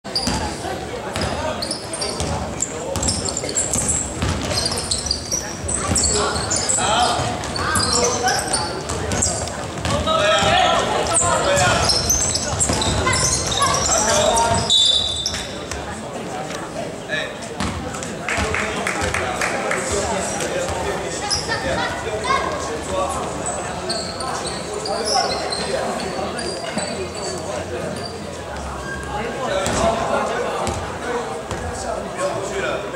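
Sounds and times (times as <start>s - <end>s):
players calling out: 1.1s - 15.8s.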